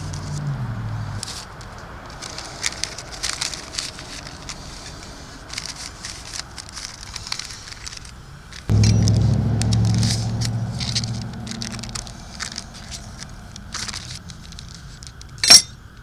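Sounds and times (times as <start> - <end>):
paper crinkling and rustling: 2.1 - 8.6
low engine drone: 8.7 - 15.2.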